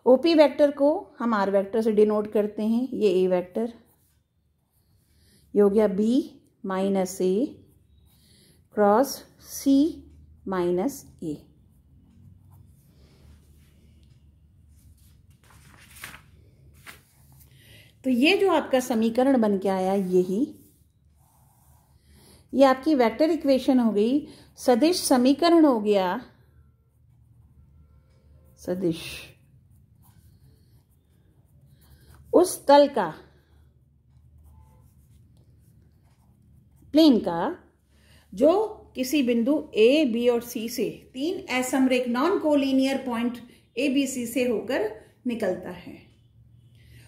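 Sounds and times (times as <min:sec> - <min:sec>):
pen scratching on paper: 0:18.4 - 0:23.3, 0:28.7 - 0:32.7, 0:34.1 - 0:37.1.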